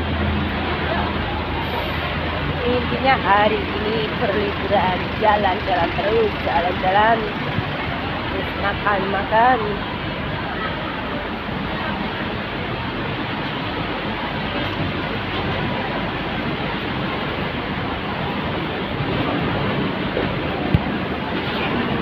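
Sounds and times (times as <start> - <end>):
busy street traffic: 0.0 - 22.0.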